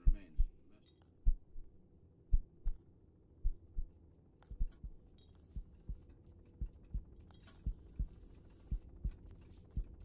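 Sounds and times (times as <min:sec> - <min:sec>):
faint metallic clinks: 0:00.7 - 0:01.3, 0:04.4 - 0:08.6
slow heartbeat thumps: 0:01.2 - 0:02.8, 0:03.4 - 0:05.0, 0:05.6 - 0:10.0.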